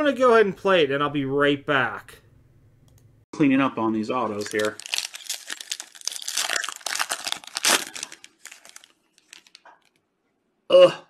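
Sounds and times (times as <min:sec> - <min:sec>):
foil wrapper crinkling: 0:04.2 - 0:10.0.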